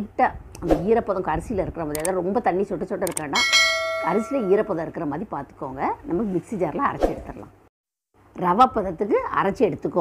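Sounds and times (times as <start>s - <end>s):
bright bell ding: 3.4s - 4.8s.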